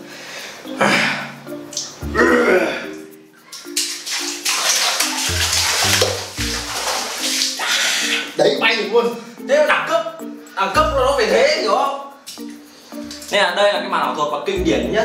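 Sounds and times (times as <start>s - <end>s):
background music with bass line: 0.8s - 3.3s, 5.2s - 7.0s, 10.2s - 11.7s, 14.5s - 15.0s
man straining vocal sounds: 2.0s - 3.0s
water splashing in plastic basin: 3.4s - 7.9s
bare feet stamping in water: 3.5s - 7.7s.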